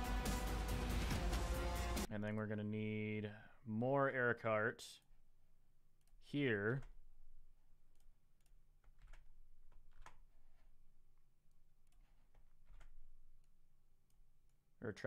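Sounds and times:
mouse and keyboard clicks: 7.9 - 10.7, 11.9 - 13.5.

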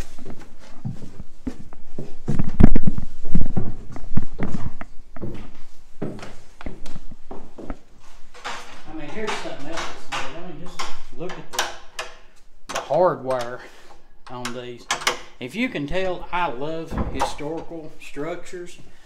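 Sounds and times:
footsteps on wooden floorboards: 0.0 - 11.3
person talking indistinctly: 8.8 - 11.8.

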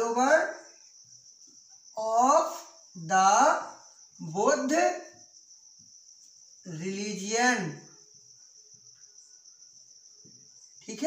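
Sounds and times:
high-pitched insect-like trill: 0.0 - 11.0.

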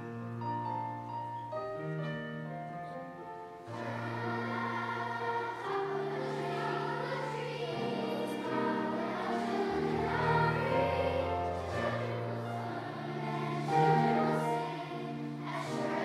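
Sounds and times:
held accompaniment notes: 0.0 - 16.0
children's choir singing: 3.5 - 16.0.

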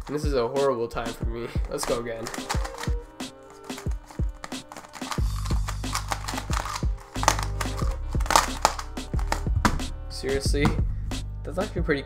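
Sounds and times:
background music with bass: 0.0 - 12.0
plastic puzzle cube clicking: 1.8 - 9.5.

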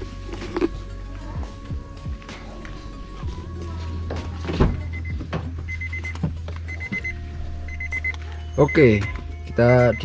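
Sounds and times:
car warning chime beeps: 4.8 - 10.0.

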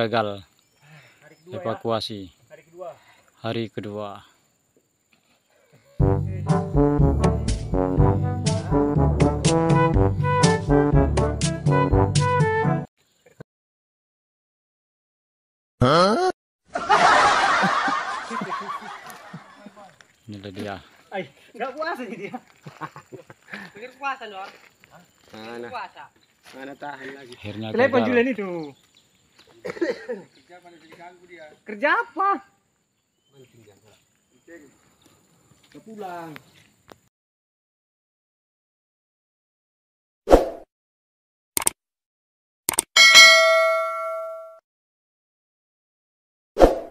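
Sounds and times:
burst of laughter: 16.7 - 19.8, 22.3 - 23.6, 29.6 - 30.3
quick double clicks: 41.6 - 41.8, 42.7 - 42.9
bright bell ding: 43.0 - 44.6.

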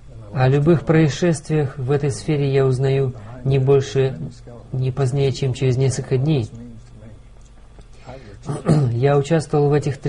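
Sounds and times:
man speaking: 0.0 - 7.4, 8.0 - 10.0
faint low hum: 0.0 - 10.0.

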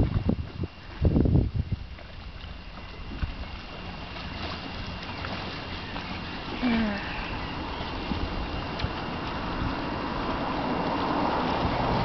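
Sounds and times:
steady wind hiss: 0.0 - 12.0
wind buffeting microphone: 0.0 - 12.0.

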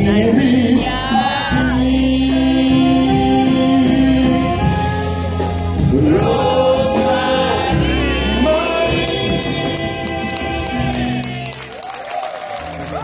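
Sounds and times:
voices singing: 0.0 - 4.6, 5.9 - 11.5
live band music: 0.0 - 13.0
audience singing along: 5.8 - 11.5.

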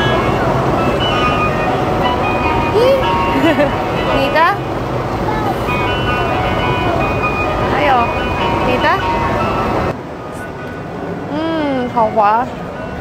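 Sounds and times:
van engine running: 0.0 - 10.4
woman humming mm: 11.3 - 11.8.

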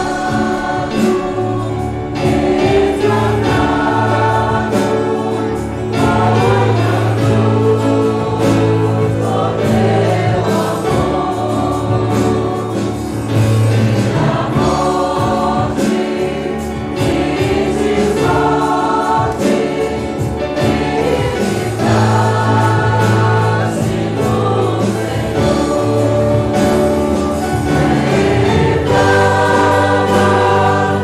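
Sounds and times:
congregation singing a hymn: 0.0 - 31.0.

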